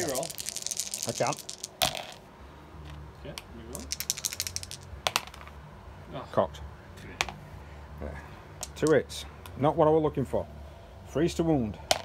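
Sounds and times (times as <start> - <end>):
dice clicking on a table: 0.0 - 2.2, 2.9 - 5.5.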